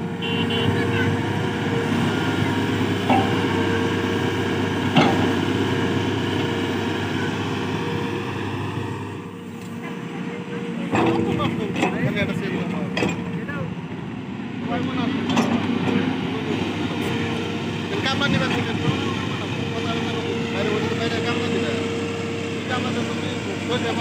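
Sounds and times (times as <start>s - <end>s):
voices: 0.0s - 8.8s, 9.4s - 24.0s
excavator diesel engine running: 0.0s - 24.0s.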